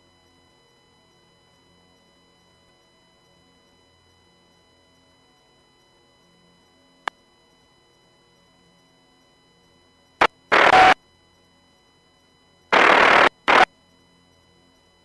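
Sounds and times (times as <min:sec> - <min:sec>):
radio click: 0:10.5 - 0:11.0, 0:12.8 - 0:13.7
radio static hiss bursts: 0:10.5 - 0:11.0, 0:12.7 - 0:13.7.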